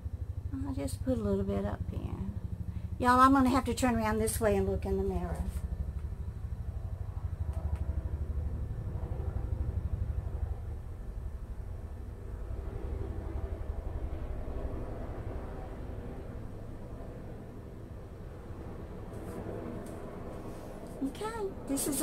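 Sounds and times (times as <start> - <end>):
low fluttering rumble: 0.0 - 22.0.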